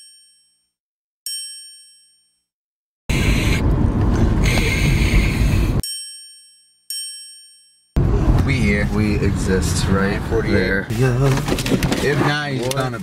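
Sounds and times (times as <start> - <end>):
car cabin road rumble: 3.1 - 5.8, 8.0 - 13.0
bright bell-like chime: 5.8 - 8.0.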